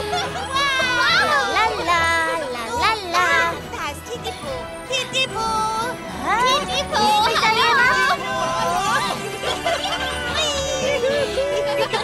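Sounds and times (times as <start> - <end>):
high excited cartoon voices: 0.0 - 4.3, 6.3 - 12.0
background music: 0.0 - 12.0.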